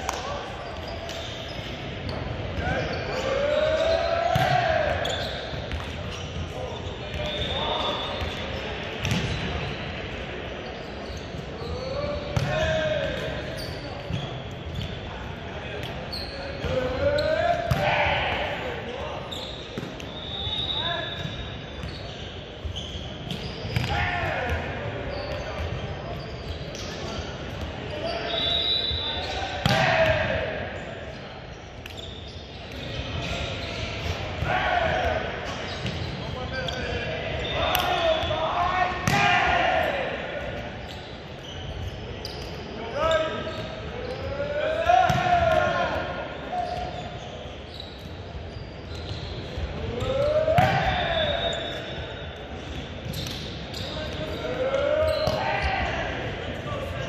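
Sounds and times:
players shouting calls: 0.0 - 9.8, 11.0 - 26.5, 27.1 - 31.2, 32.8 - 47.8, 48.9 - 57.0
ball hitting and bouncing on court: 4.3 - 7.4, 8.2 - 9.7, 11.3 - 15.0, 15.8 - 18.6, 19.7 - 20.1, 22.7 - 27.8, 29.6 - 30.3, 32.7 - 36.4, 39.0 - 39.6, 44.8 - 46.0, 49.0 - 51.1, 52.7 - 55.9.

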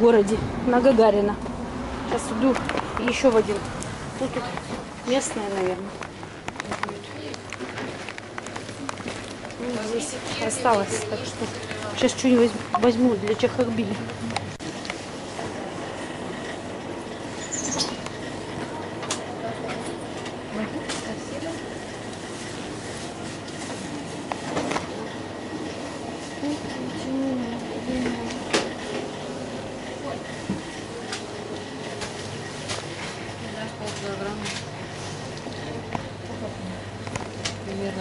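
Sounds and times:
refrigerated display case hum: 0.0 - 38.0
shop noise: 0.0 - 38.0
low indistinct voices: 2.0 - 38.0.

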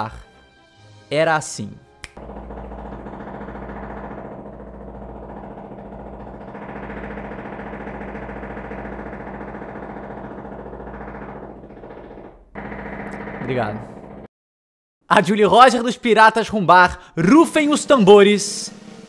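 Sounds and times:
low droning rumble with flutter: 2.2 - 13.4.

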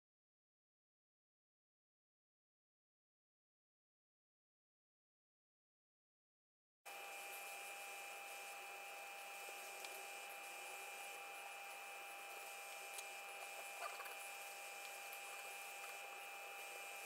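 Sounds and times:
faint steady hum: 6.9 - 17.0.

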